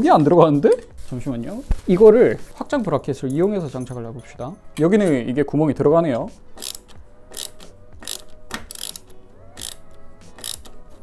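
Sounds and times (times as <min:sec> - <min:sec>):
screwdriver rasping clicks: 0:06.6 - 0:10.8.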